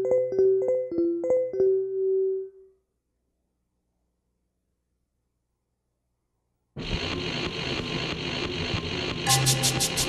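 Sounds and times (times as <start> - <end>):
hissy electronic music: 6.8 - 10.0.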